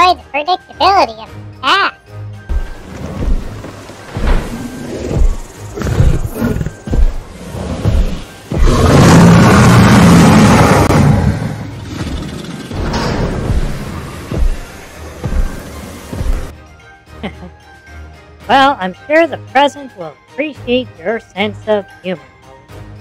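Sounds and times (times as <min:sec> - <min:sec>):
low thuds: 0:02.5 - 0:11.0, 0:11.8 - 0:16.5
dinosaur roar: 0:04.6 - 0:13.9.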